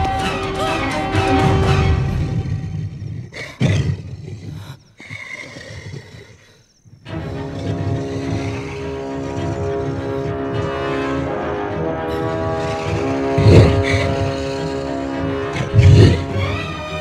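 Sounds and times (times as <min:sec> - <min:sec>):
film score held notes: 0:00.0 - 0:03.6, 0:06.6 - 0:17.0
monster roaring: 0:07.4 - 0:17.0.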